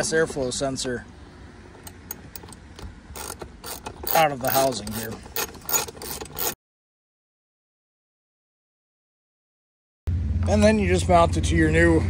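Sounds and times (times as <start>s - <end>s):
hand ratchet clicks: 1.8s - 6.6s
low steady rumble: 10.1s - 12.0s.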